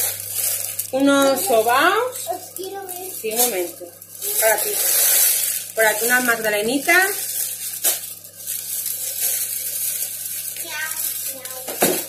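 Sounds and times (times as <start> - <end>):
plastic bag rustling and crinkling: 0.0 - 12.0.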